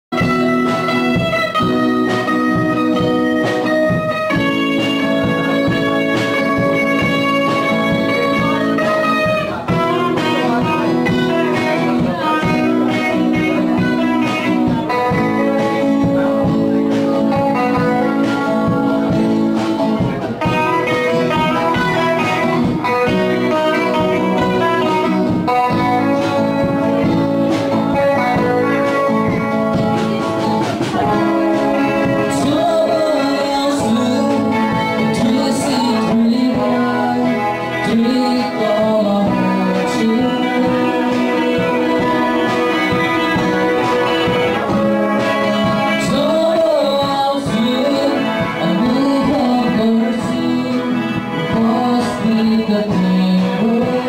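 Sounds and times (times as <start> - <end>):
acoustic and electric guitars: 0.0 - 54.0.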